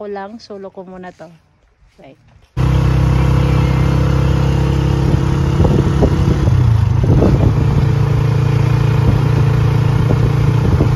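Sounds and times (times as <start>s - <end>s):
vehicle engine running: 2.6s - 10.9s.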